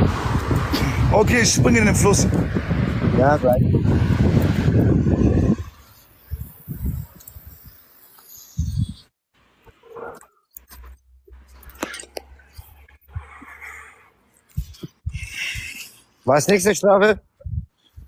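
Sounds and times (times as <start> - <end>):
wind rumble on microphone: 0.0 - 7.8, 8.5 - 9.1, 14.5 - 15.7, 17.1 - 18.0.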